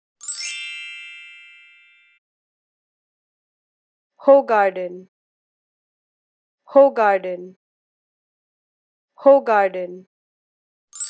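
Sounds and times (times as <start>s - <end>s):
bright logo chime: 0.2s - 2.2s.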